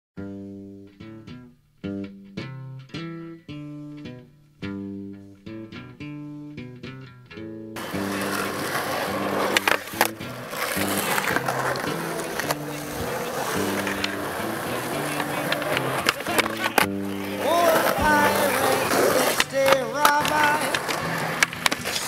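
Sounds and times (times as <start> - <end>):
background music with bass line: 0.2 - 22.0
skateboard popping and landing: 7.8 - 22.0
skateboard wheels rolling on concrete: 7.8 - 22.0
voice with sliding pitch: 11.8 - 20.9.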